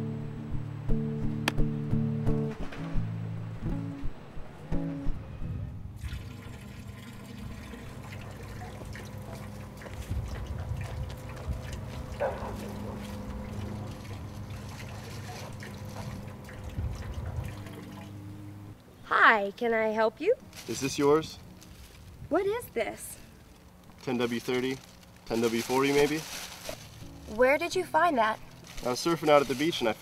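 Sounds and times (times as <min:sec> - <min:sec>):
motor oil pouring into a drain: 0:06.0 - 0:18.4.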